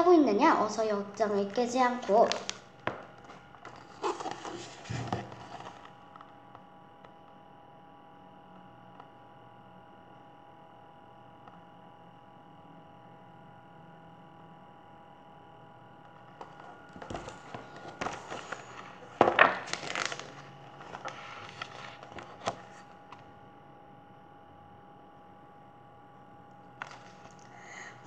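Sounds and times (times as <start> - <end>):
quiet steady hum: 0.0 - 28.0
book pages rustling: 1.0 - 6.0, 16.2 - 23.3, 26.7 - 27.6.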